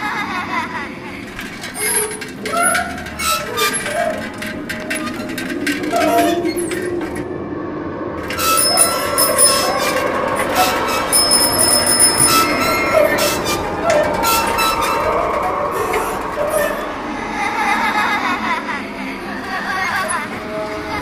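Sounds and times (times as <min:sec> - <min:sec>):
motorised tricycle grinding squeal: 0:01.2 - 0:07.3, 0:08.2 - 0:17.4, 0:19.2 - 0:21.0
high whistling squeals: 0:01.6 - 0:18.0.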